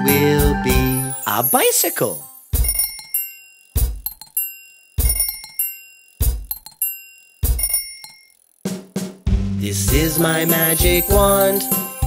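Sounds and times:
bicycle bell ringing: 0.9s - 8.6s, 10.1s - 12.0s.

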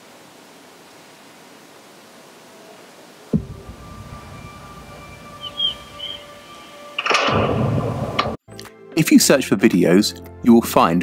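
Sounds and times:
loud rushing swell: 3.3s - 8.4s
short high notes: 3.4s - 8.0s
low rumble: 3.4s - 8.4s
music with held tones: 3.4s - 11.0s.

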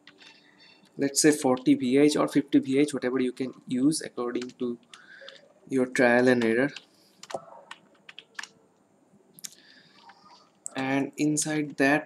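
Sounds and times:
computer keyboard typing: 4.3s - 5.5s, 6.2s - 8.6s, 9.8s - 10.6s.

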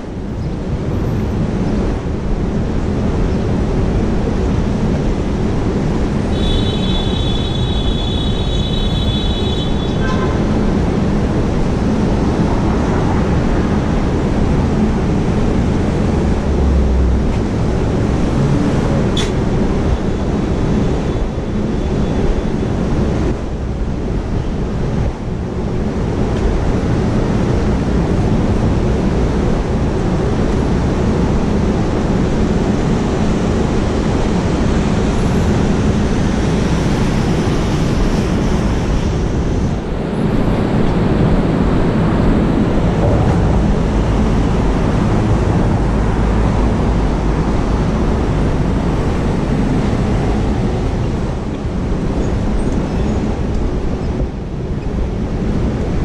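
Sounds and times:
traffic rumble: 0.0s - 56.0s
wind buffeting microphone: 9.7s - 56.0s.

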